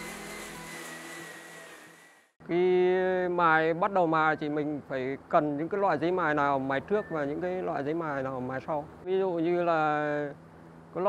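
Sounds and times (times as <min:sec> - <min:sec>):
electric drill sanding metal: 0:00.0 - 0:02.3.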